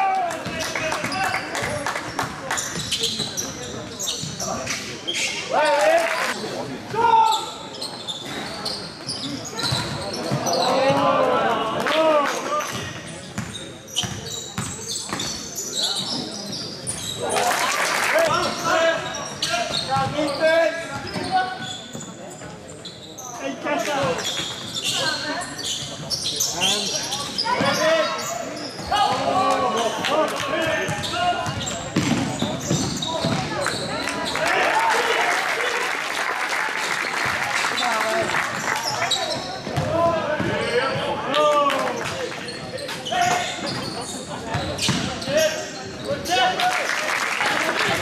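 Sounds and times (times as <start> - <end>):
basketball bouncing on court: 30.6 - 33.8, 39.4 - 41.0, 44.5 - 45.2.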